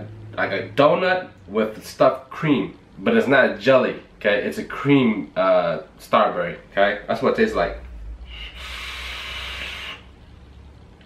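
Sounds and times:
airy hiss of vape inhale: 8.3s - 10.1s.

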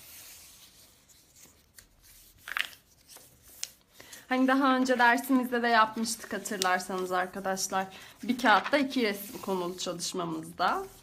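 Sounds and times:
paper rustling: 0.0s - 11.0s.

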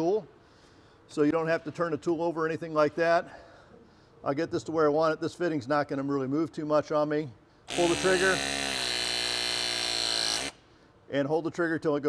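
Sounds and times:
press tool motor whine: 7.7s - 10.6s.

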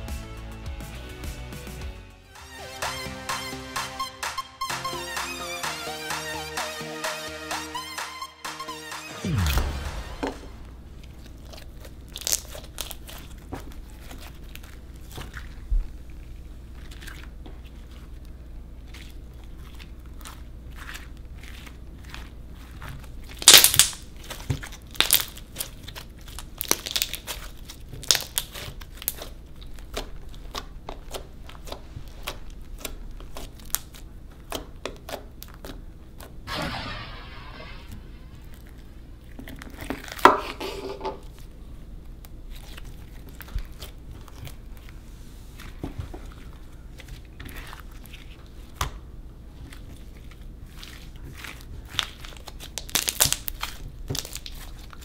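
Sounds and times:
slime popping and crackling: 10.9s - 36.4s, 38.4s - 40.4s, 49.6s - 55.0s.

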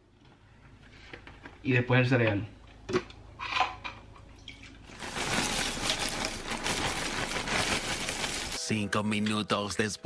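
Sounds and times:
cereal flakes pouring into bowl: 4.9s - 8.6s
handling sounds: 4.9s - 8.6s.

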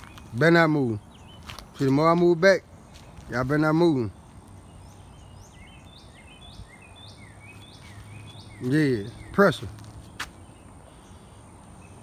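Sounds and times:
bird chirping: 0.0s - 12.0s
quiet outdoor ambience: 0.0s - 12.0s.

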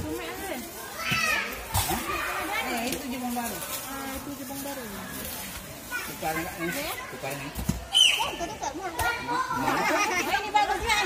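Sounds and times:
chatter of voices: 0.0s - 11.0s.

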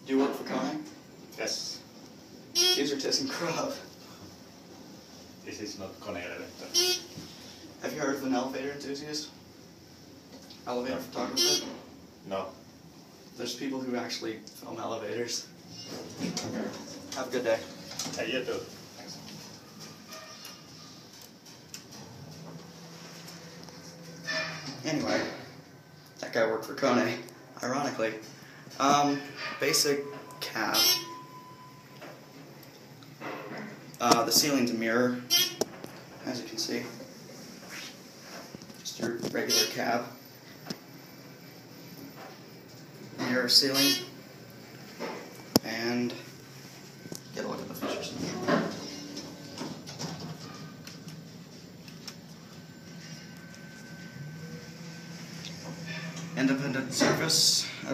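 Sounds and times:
elevator cab hum: 6.1s - 7.5s, 14.8s - 26.7s, 28.9s - 33.0s, 39.5s - 57.9s.

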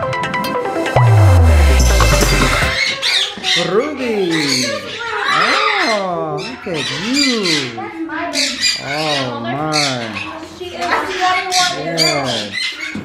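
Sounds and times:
sing-song voice: 0.6s - 2.8s.

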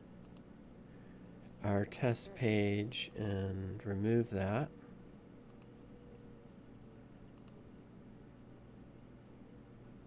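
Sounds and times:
faint steady hum: 0.0s - 10.0s
computer mouse clicks: 0.2s - 0.5s, 5.5s - 5.8s, 7.3s - 7.6s.

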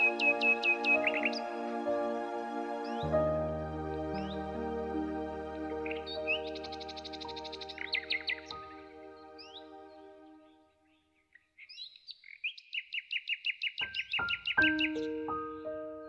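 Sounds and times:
songbird trilling: 0.0s - 1.4s, 5.8s - 8.8s, 11.6s - 15.2s
soft solo piano: 14.2s - 16.0s.

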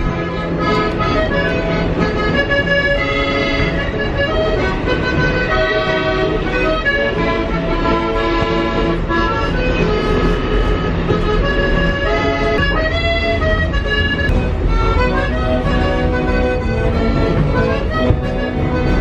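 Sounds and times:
accordion melody: 0.0s - 19.0s
subway train low rumble: 0.0s - 19.0s.

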